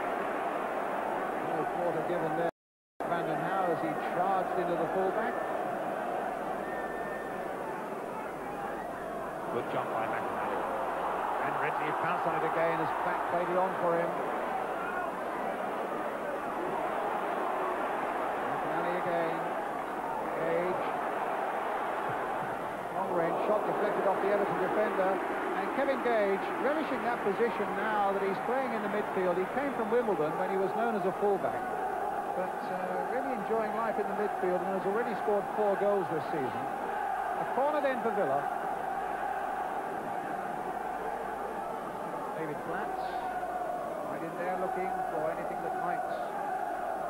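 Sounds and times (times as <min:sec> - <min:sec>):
crowd voices din: 0:03.1 - 0:47.0.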